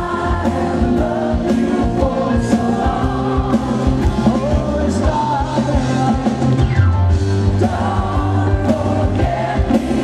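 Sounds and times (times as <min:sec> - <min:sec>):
vocals singing together: 0:00.0 - 0:06.6, 0:07.4 - 0:10.0
bass: 0:00.0 - 0:10.0
electric guitar: 0:00.0 - 0:10.0
keyboard: 0:00.0 - 0:10.0
steady drum beat: 0:00.0 - 0:10.0.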